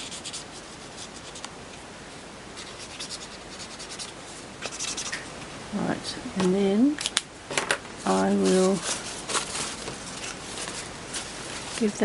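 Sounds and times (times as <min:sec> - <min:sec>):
paper towel rustling: 0:08.0 - 0:12.0.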